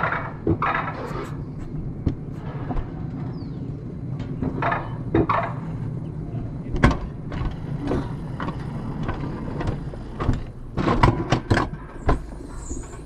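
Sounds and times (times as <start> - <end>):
knocks and rattles: 0.0 - 1.0, 4.1 - 5.9, 6.7 - 12.3
coaster wheels rumbling on rails: 0.0 - 13.0.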